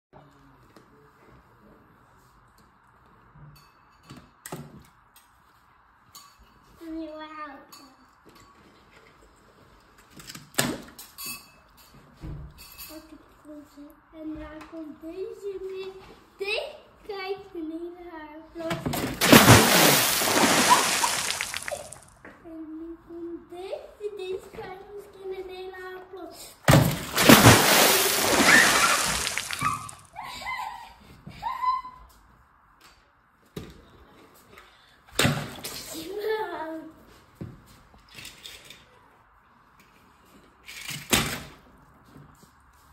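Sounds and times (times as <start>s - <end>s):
water splashing in a tub: 19.2s - 22.1s, 26.7s - 30.1s.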